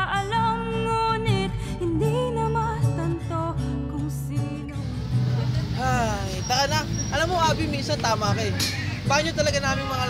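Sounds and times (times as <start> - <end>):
street traffic hum: 4.6 - 10.0.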